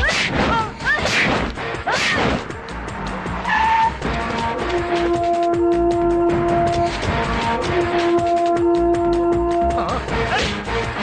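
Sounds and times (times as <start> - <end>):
background music sustained notes: 0.5 - 11.0
tyres squealing: 3.4 - 5.9.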